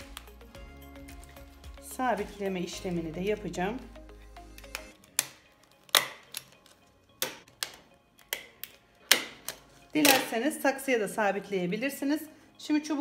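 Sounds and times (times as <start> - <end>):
stapler clicks: 4.5 - 10.3.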